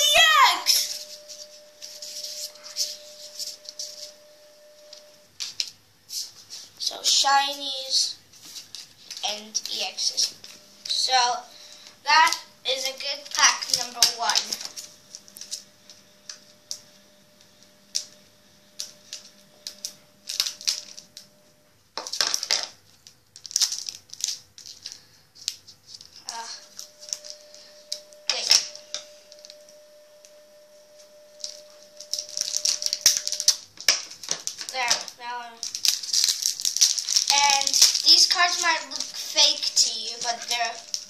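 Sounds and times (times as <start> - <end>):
foil wrapper crinkling: 8.3 - 16.8, 18.7 - 21.3, 22.0 - 29.6, 31.2 - 41.0
scissors cutting foil: 23.4 - 26.4, 31.4 - 41.0.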